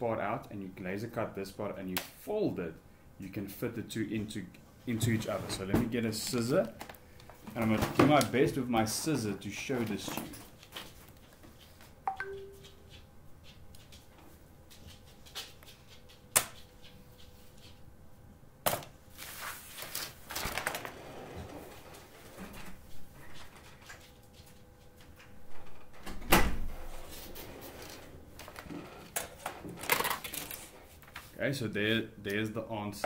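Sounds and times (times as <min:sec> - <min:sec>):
paper rustling and sliding: 0:19.1 - 0:22.0.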